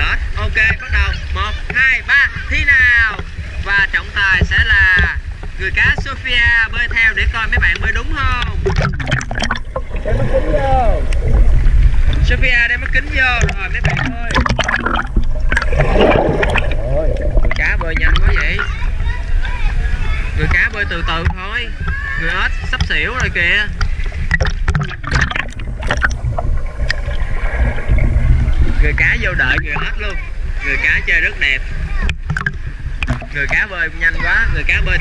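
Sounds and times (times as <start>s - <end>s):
water sloshing and splashing: 0.2s - 35.0s
voices: 10.0s - 11.3s, 16.8s - 23.8s, 28.6s - 32.2s
child calling out: 21.9s - 22.7s.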